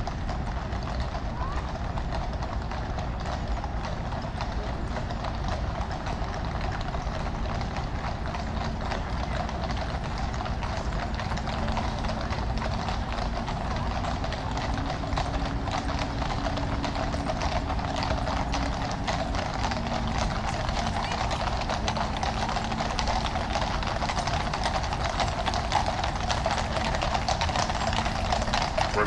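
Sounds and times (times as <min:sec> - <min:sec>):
horse hooves clip-clopping on tarmac: 0:00.0 - 0:29.0.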